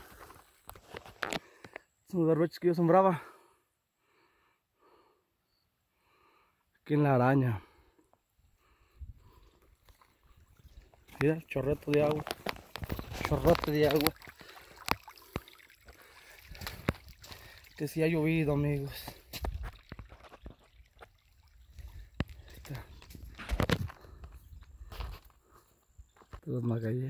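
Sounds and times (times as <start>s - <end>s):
footsteps on wet ground: 0.0s - 1.7s, 9.2s - 26.6s
water trickling over mud: 8.6s - 25.6s.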